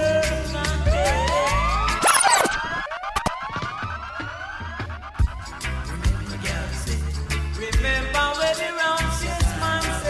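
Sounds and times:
reggae music: 0.0s - 10.0s
siren whoop sound effect: 0.9s - 5.4s.

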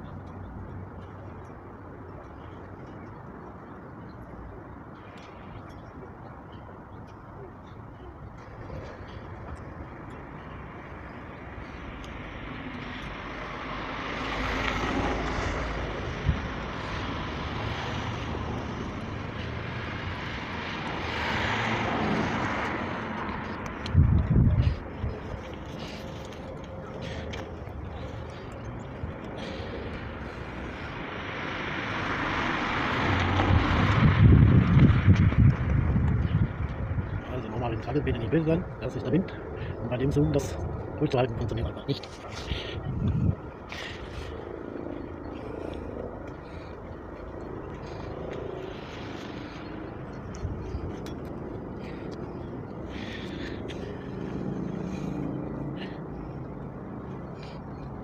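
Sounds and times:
vehicles passing: 0.0s - 58.0s
wind buffeting microphone: 14.4s - 31.3s, 31.9s - 58.0s.

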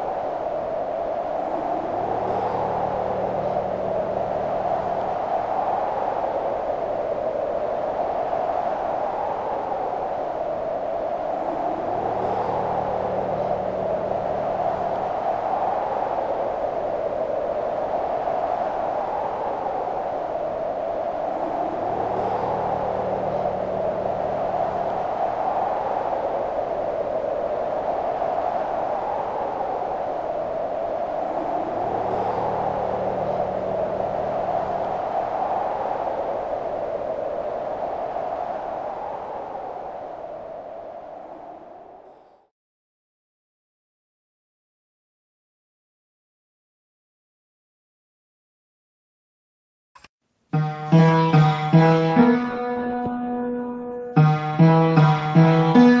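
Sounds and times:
eerie droning wind-like tone: 0.0s - 42.5s, 50.6s - 56.0s
low hum: 1.1s - 6.1s, 20.7s - 26.4s, 30.6s - 38.0s, 50.6s - 56.0s
rising swoop: 50.6s - 56.0s.

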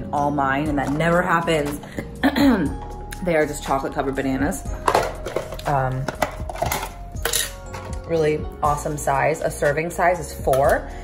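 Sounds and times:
package rustling: 4.8s - 7.8s.

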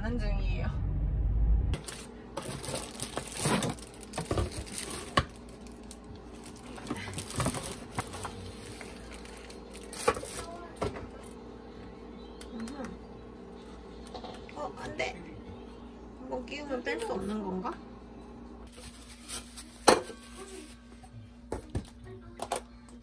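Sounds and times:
packaging rustling and crinkling: 1.8s - 10.7s, 18.7s - 20.8s.

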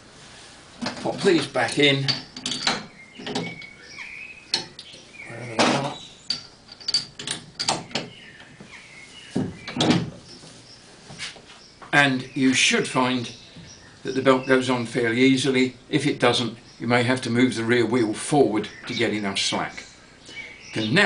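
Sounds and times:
metal bolts clinking: 0.8s - 8.2s.

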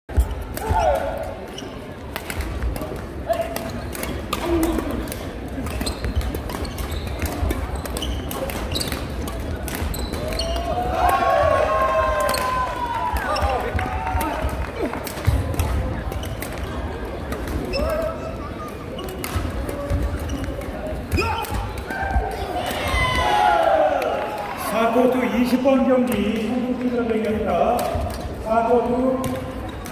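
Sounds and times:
shoes squeaking on court floor: 0.1s - 2.0s, 2.8s - 10.8s, 15.2s - 22.6s, 27.9s - 29.9s
voices in background: 0.5s - 29.9s.

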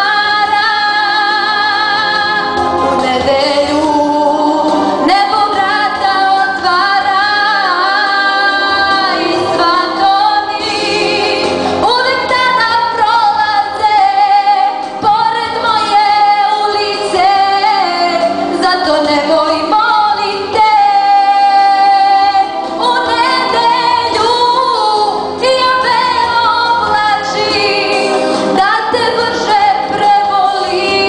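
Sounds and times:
girl singing into a microphone: 0.0s - 31.0s.

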